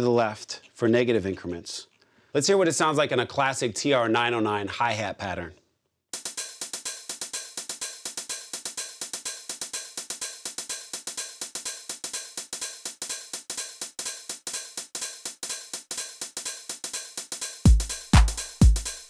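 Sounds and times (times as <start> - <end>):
drum machine hi-hat ticks: 6.2 - 19.0.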